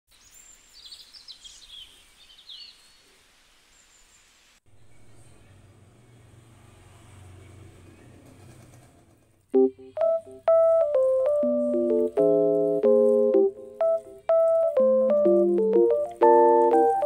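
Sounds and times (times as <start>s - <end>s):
open-air ambience: 0.1s - 17.0s
birds chirping and trilling: 0.2s - 3.1s.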